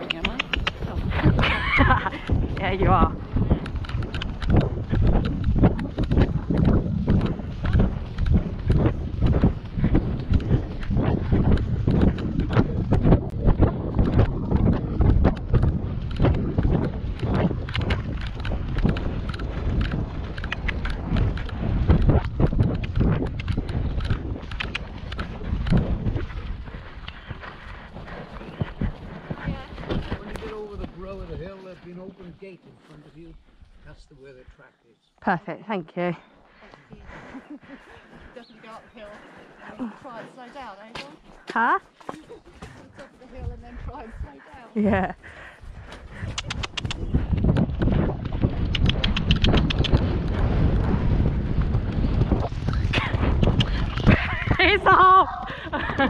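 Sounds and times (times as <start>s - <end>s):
pony hoofbeats on wet grass: 0.0s - 33.1s.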